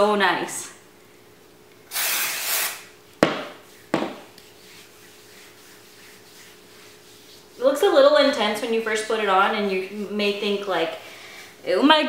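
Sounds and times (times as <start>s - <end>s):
aerosol can spraying: 1.9s - 2.9s.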